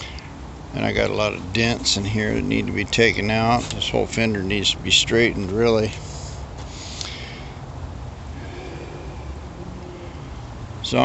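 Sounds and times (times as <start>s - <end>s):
low rumble and hiss outdoors: 0.0s - 11.0s.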